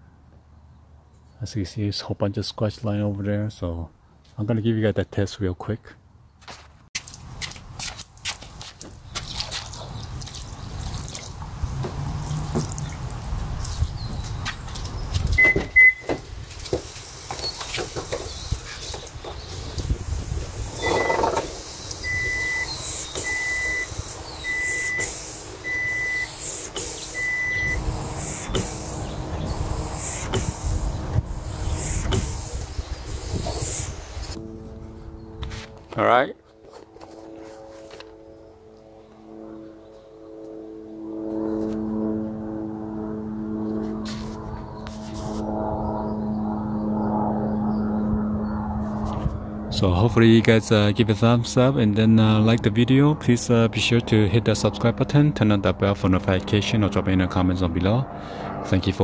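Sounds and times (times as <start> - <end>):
car washer spraying: 15.4 - 34.4
short electronic beep: 20.8 - 21.2, 22.0 - 26.3, 27.1 - 27.8.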